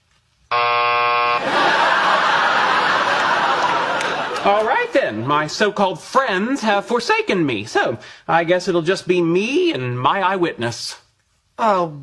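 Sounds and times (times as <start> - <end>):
flat buzzer: 0.5 - 1.4
audience laughter: 1.4 - 5.3.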